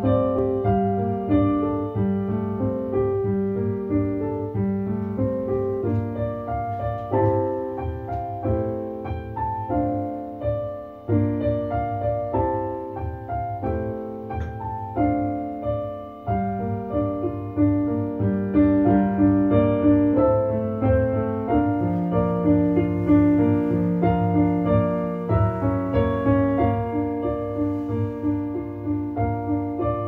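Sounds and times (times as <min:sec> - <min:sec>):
solo piano: 0:00.0 - 0:30.0.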